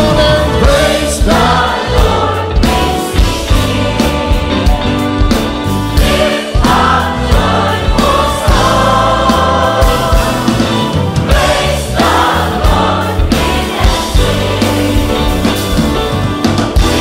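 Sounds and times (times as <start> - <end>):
band backing with bass: 0.0 - 17.0
choir singing gospel song: 0.0 - 17.0.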